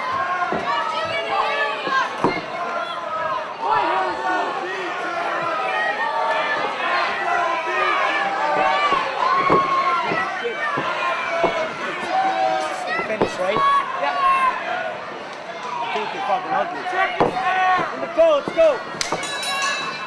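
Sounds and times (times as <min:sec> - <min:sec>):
crowd shouting and cheering: 0:00.0 - 0:20.0
thumps: 0:08.5 - 0:11.8.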